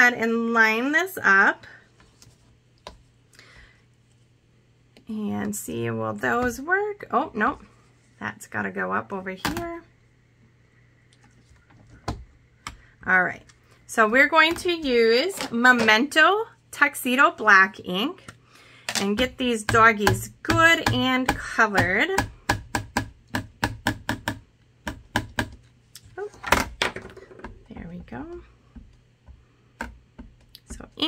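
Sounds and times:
ink pad tapping plastic stamps: 19.1s - 25.6s.

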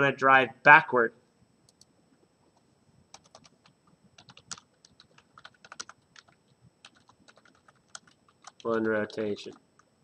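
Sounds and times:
typing on keyboard: 3.1s - 9.9s.

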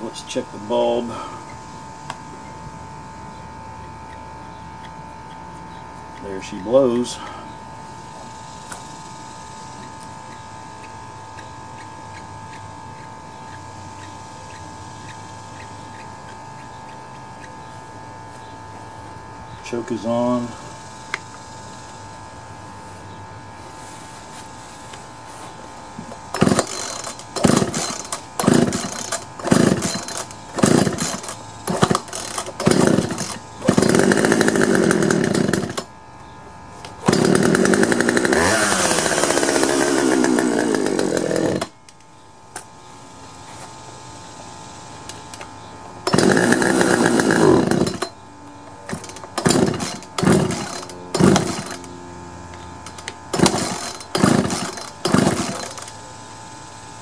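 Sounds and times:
chainsaw engine running: 26.0s - 35.9s, 36.9s - 41.8s, 45.9s - 56.2s
starter rope pulls: 26.1s - 35.9s, 37.0s - 41.7s, 46.0s - 48.1s, 48.9s - 51.9s, 52.8s - 55.9s.

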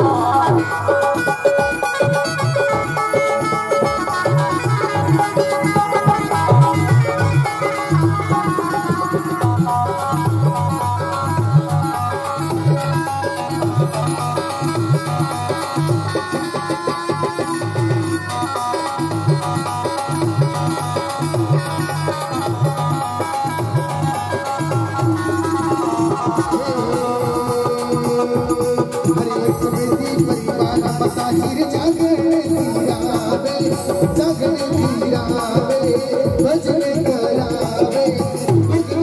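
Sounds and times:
folk dance music: 0.0s - 39.0s.

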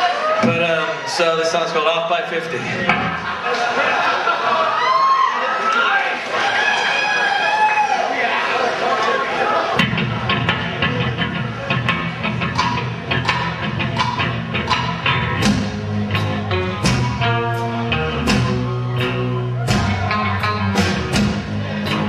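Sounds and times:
audience shouting and cheering: 0.0s - 22.0s
live rock band playing: 9.8s - 22.0s.

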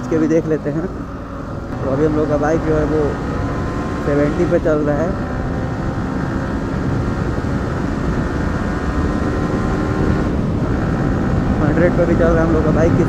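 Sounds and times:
motorcycle engine at speed: 0.0s - 13.0s
wind noise: 0.0s - 13.0s.

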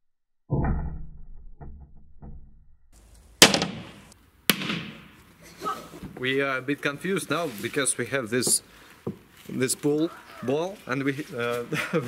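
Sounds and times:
ball striking glass: 3.4s - 5.2s.

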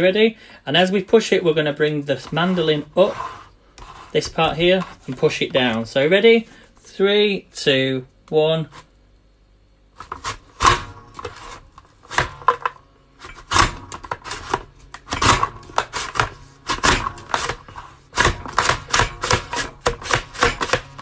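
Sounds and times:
mandoline chopper cutting potato: 10.0s - 21.0s.

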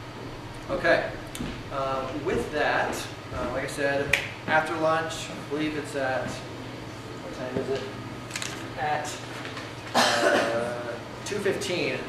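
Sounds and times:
person coughing: 9.9s - 10.8s.

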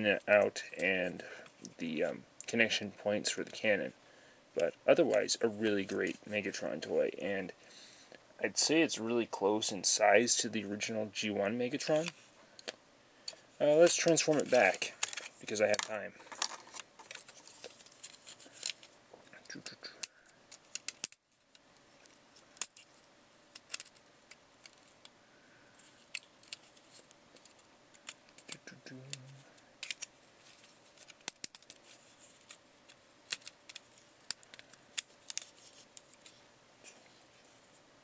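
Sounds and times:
plastic toy parts clicking: 14.0s - 22.9s, 23.5s - 24.8s, 27.4s - 36.3s.

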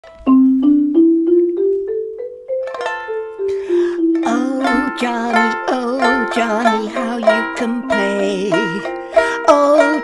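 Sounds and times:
marimba notes climbing in pitch: 0.0s - 4.9s
plucked ukulele strings: 0.0s - 10.0s.

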